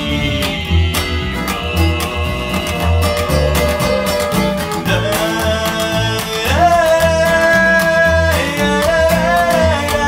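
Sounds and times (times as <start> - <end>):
acoustic guitar: 0.0 - 10.0
upright bass: 0.0 - 10.0.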